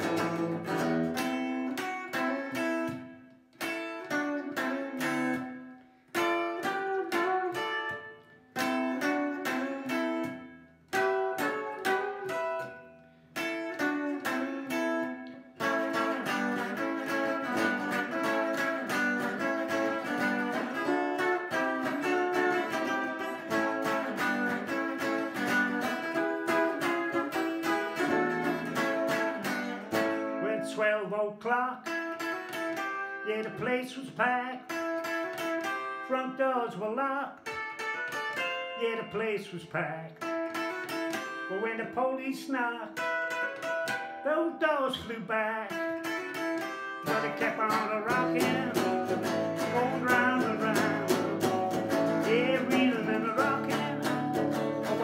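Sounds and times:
electric guitar rock solo: 0.0s - 30.8s, 34.6s - 36.0s, 37.4s - 39.2s, 40.2s - 41.6s, 42.8s - 45.0s, 45.6s - 55.0s.

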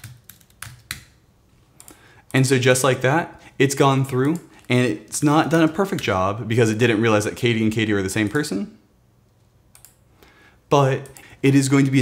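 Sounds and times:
computer keyboard typing: 0.0s - 1.2s, 3.8s - 4.8s, 9.4s - 10.0s, 11.0s - 11.3s.

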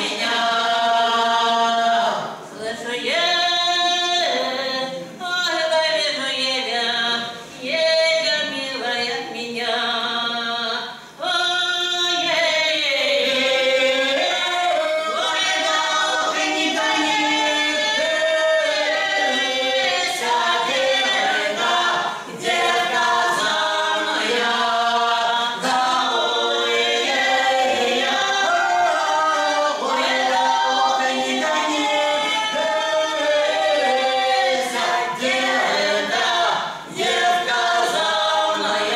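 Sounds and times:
group singing in close harmony: 0.0s - 38.9s.

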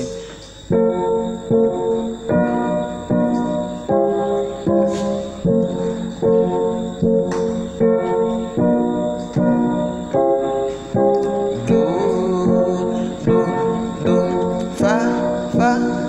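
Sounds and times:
electronic keyboard chords: 0.0s - 16.0s.

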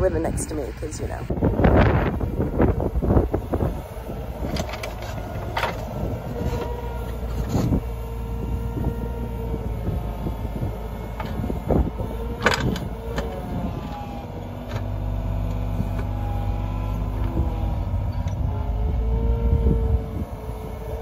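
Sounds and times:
excavator diesel engine running: 0.0s - 21.0s
hydraulic whine: 0.9s - 21.0s.

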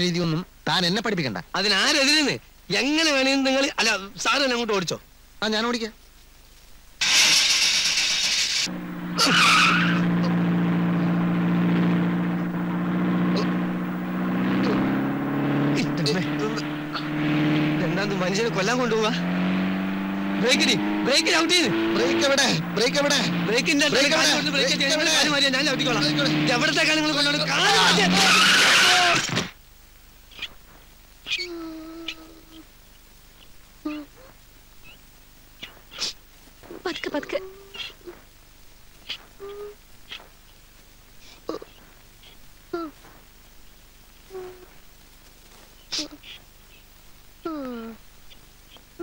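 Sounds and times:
drawn-out call: 7.0s - 19.1s, 26.5s - 29.3s
car engine droning: 7.0s - 29.4s.

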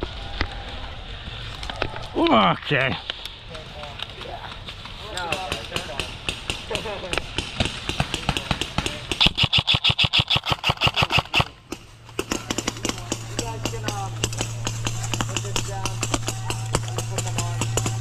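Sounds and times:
airsoft gun shots: 5.3s - 18.0s
faint voices calling out: 11.5s - 18.0s.

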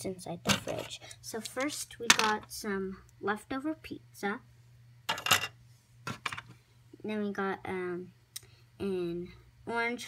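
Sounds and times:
plastic toy pieces clattering: 0.5s - 2.4s, 5.1s - 5.5s.

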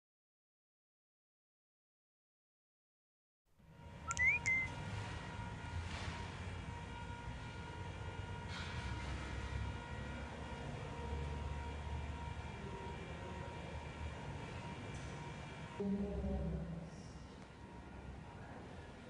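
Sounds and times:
faint constant hum: 3.6s - 19.0s
rising beep-like chirp: 4.1s - 4.7s.

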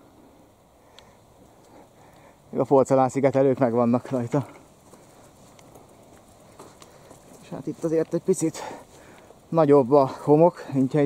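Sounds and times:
bicycle rolling on dirt track: 1.0s - 11.0s
light clicks and rattles: 3.9s - 9.4s.

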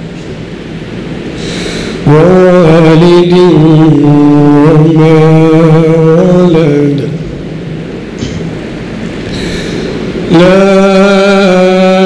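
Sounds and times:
recitation through a microphone: 0.0s - 12.0s
steady rumbling background noise: 0.0s - 12.0s.

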